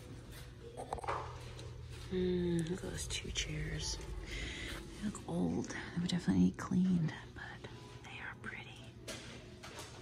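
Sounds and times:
faint whispered voice: 0:02.0 - 0:09.0.

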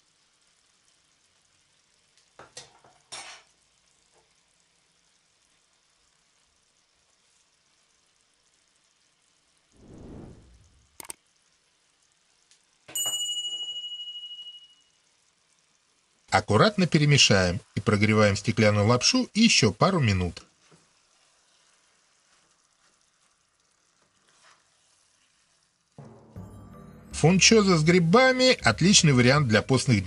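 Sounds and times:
low shaking or grinding noise: 0:09.8 - 0:11.0
bright metallic ding: 0:12.9 - 0:14.8, 0:26.0 - 0:28.0.

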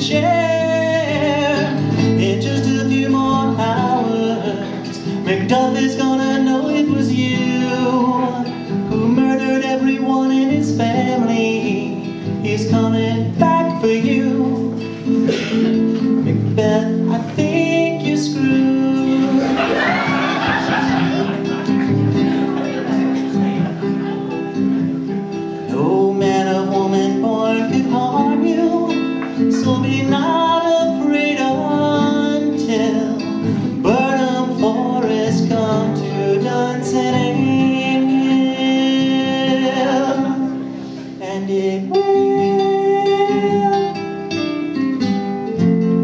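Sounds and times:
man singing: 0:00.0 - 0:45.1
strummed acoustic guitar: 0:00.0 - 0:46.0.

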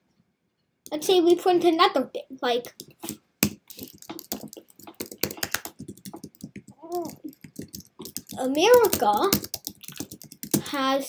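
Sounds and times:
keyboard typing clicks: 0:02.7 - 0:10.6.

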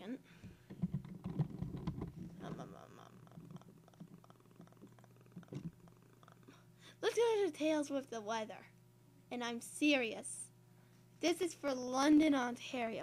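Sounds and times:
steady low hum: 0:00.0 - 0:13.0
microphone handling noise: 0:00.4 - 0:06.3.

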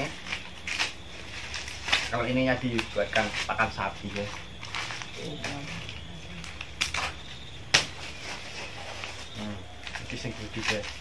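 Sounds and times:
corn husks tearing: 0:00.0 - 0:11.0
faint papery rustle: 0:07.9 - 0:11.0.

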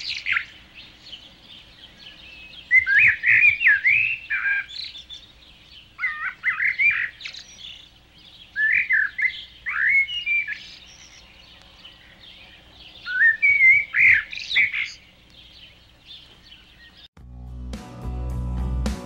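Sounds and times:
songbird whistling: 0:00.0 - 0:17.1.

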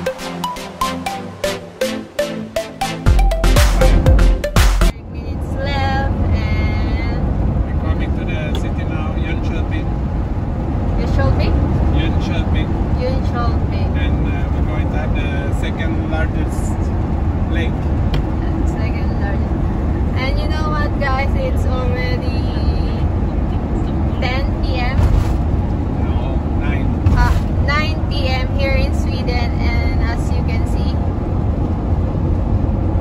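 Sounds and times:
engine and tyre rumble: 0:04.9 - 0:33.0
voices talking: 0:20.0 - 0:25.0.

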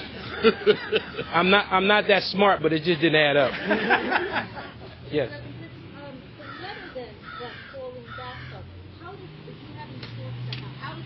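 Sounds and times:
bird harsh calls: 0:06.4 - 0:08.7.

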